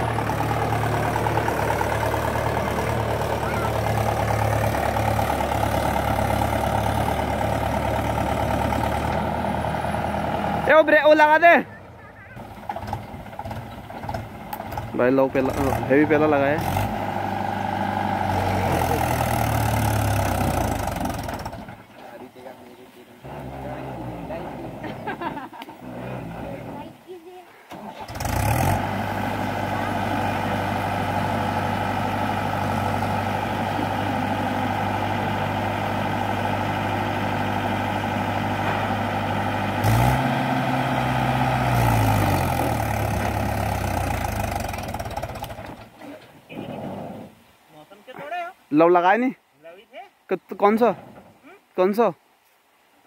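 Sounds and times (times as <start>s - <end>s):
tractor diesel engine: 0.0s - 47.6s.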